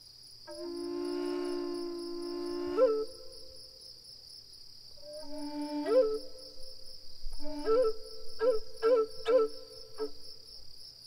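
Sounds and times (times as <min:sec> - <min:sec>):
crickets chirping: 0:00.0 - 0:11.0
low flute note: 0:00.5 - 0:03.6, 0:05.0 - 0:06.4, 0:07.3 - 0:10.1.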